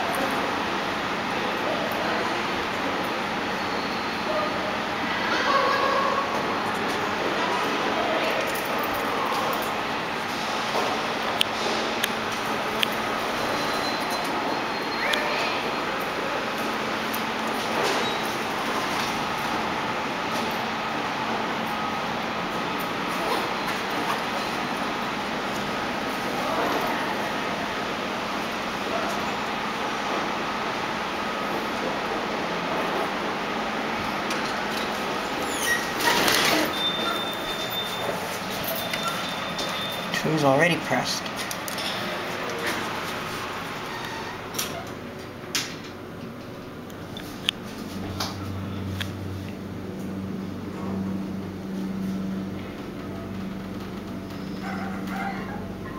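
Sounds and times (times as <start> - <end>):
elevator doors sliding open: 0.0 - 55.9
steady background noise: 0.0 - 55.9.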